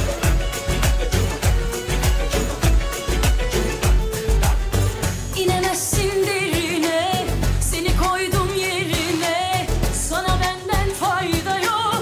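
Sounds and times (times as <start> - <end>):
pop accompaniment with bass beat: 0.0 - 12.0
woman singing pop song: 5.3 - 12.0.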